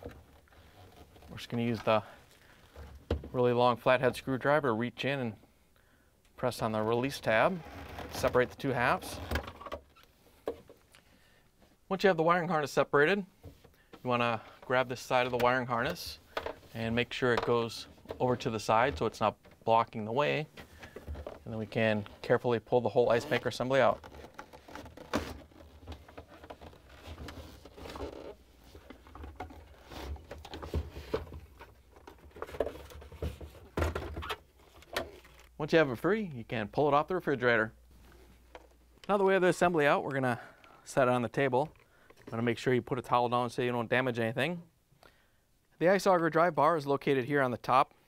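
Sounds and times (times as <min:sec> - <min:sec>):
handling noise: 0:13.4 - 0:35.6
plastic scraping and clicking: 0:20.6 - 0:22.3, 0:23.1 - 0:35.6.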